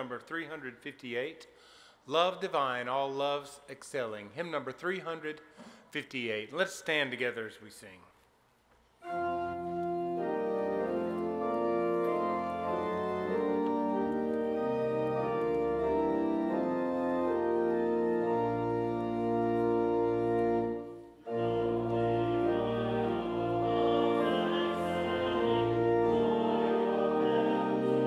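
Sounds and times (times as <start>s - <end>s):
church organ sustained chords: 9.0s - 28.0s.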